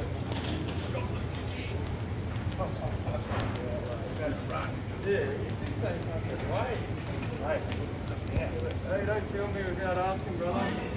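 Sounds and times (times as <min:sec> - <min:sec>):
faint voices: 0:00.0 - 0:10.9
steady low hum: 0:00.0 - 0:10.9
footsteps of people walking: 0:00.2 - 0:10.9.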